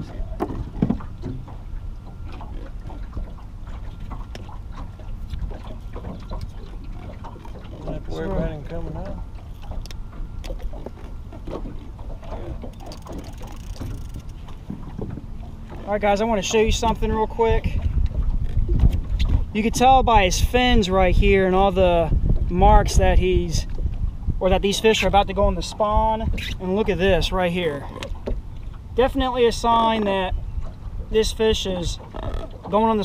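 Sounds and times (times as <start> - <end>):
water lapping against boat hull: 0.0 - 33.0
wind rumbling on microphone: 0.0 - 33.0.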